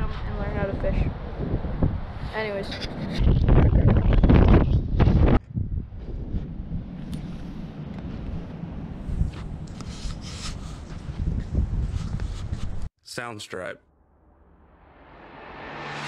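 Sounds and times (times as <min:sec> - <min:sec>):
wind buffeting microphone: 0:00.0 - 0:12.9.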